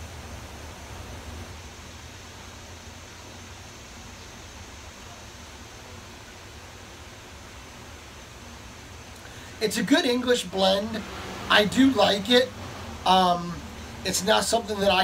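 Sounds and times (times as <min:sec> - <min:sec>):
steady background hiss: 0:00.0 - 0:15.0.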